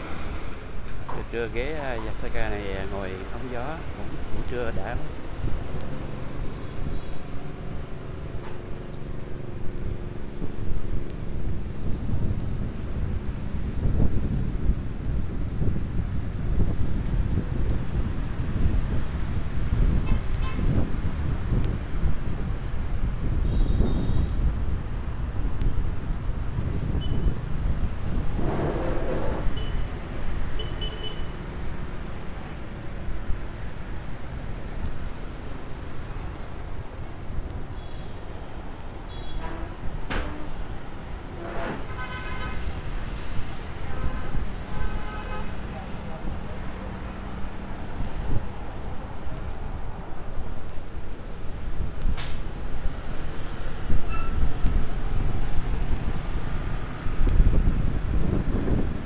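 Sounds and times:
motorbike and car engines rumbling: 0.0s - 59.0s.

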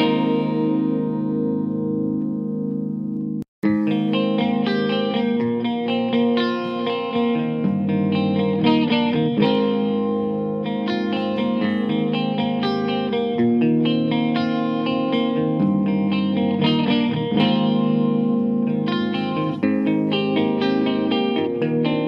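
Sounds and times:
electric guitar chords and notes: 0.0s - 22.0s.

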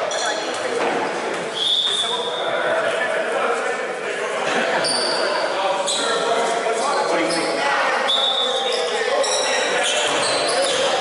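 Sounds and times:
sneaker squeaks: 0.0s - 0.8s, 1.5s - 2.5s, 4.8s - 11.0s.

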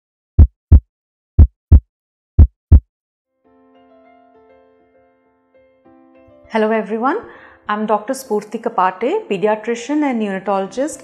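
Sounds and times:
heartbeat: 0.4s - 2.8s
soft music: 3.4s - 11.0s.

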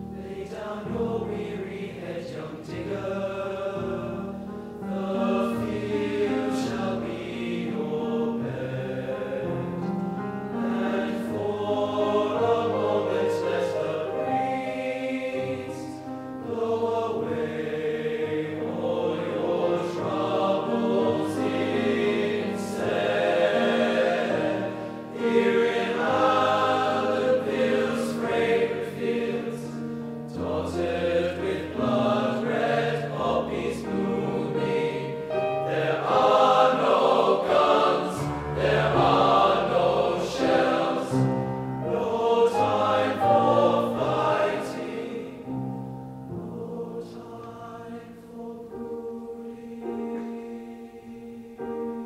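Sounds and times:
male voice choir singing: 0.1s - 45.6s, 46.4s - 52.0s.

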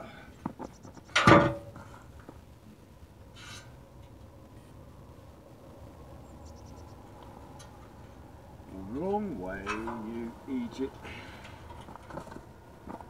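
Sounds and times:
faint outdoor background: 0.0s - 13.0s
brief rustle or scrape: 3.4s - 3.7s.

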